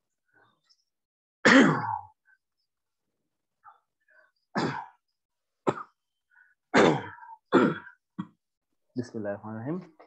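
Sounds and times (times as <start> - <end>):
person coughing: 1.4 - 2.1, 4.6 - 5.0, 5.6 - 6.0, 6.7 - 8.4.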